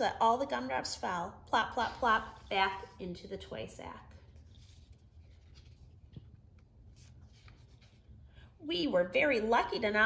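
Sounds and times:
paper page turning: 4.2s - 8.2s.

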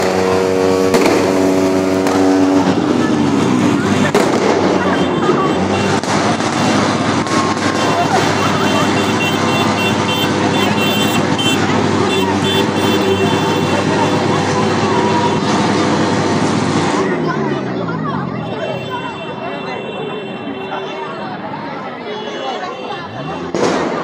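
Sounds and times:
distant voices: 0.0s - 24.0s
traffic: 0.0s - 24.0s
high horn-like tones: 4.7s - 16.1s, 18.4s - 23.5s.

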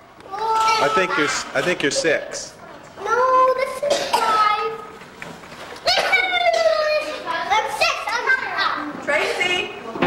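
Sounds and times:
young children talking: 0.2s - 5.0s, 5.8s - 10.0s.

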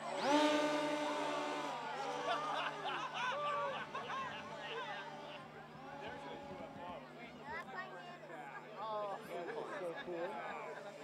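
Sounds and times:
people laughing and chattering: 0.0s - 11.0s.

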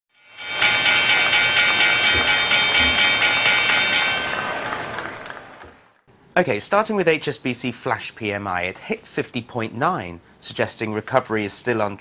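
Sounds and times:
pulsing electronic chord: 2.0s - 3.9s.

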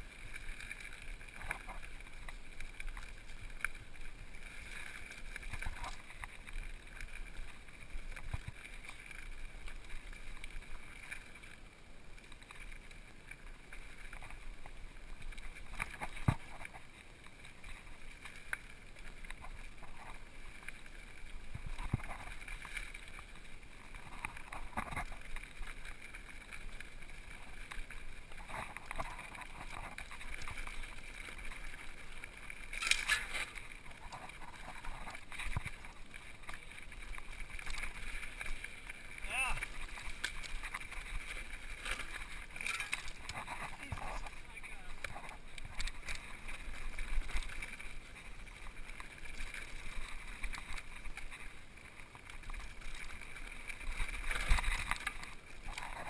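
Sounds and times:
bike rattling: 0.0s - 56.0s
bike tyres crunching over gravel: 0.0s - 56.0s.

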